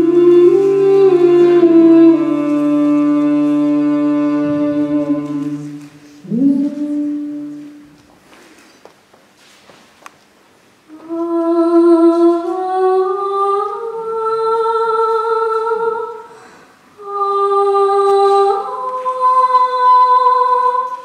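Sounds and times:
high voice humming without words: 0.0 - 7.9.

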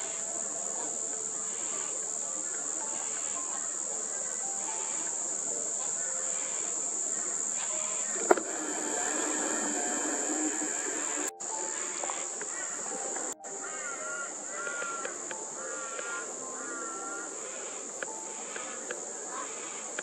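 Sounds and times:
insects droning: 0.0 - 20.0
sharp click: 7.6 - 10.5.

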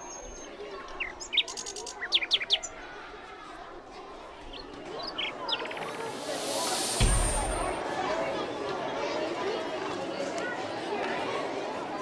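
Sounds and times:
songbird singing: 4.5 - 7.7.

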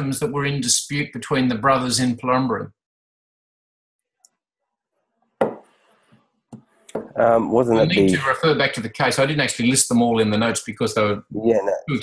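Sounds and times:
sharp knock: 5.4 - 5.7.

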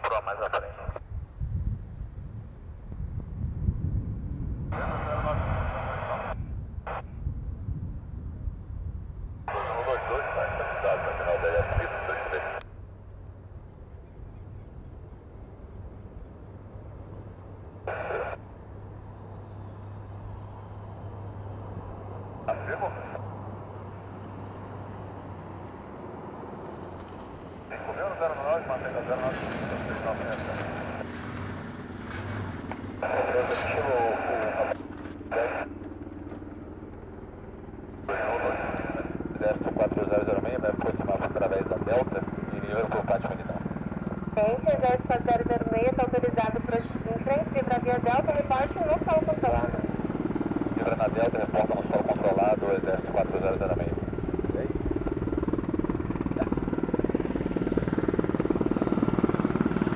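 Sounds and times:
radio chatter bursts: 0.0 - 1.0, 4.8 - 7.0, 9.5 - 12.6, 17.9 - 18.4, 22.4 - 23.2, 27.7 - 31.0, 33.0 - 35.8, 38.0 - 43.6
helicopter rotor and turbine noise: 0.0 - 59.9.

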